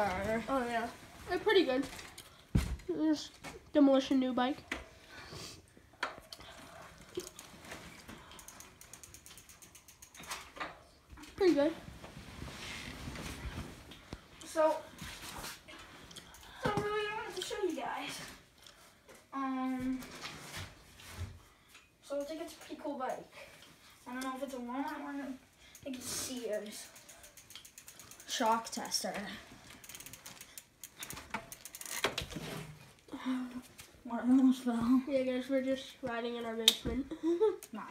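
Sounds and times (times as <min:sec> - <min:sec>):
bike freewheel ticking: 0:07.0 - 0:11.3, 0:24.2 - 0:32.2.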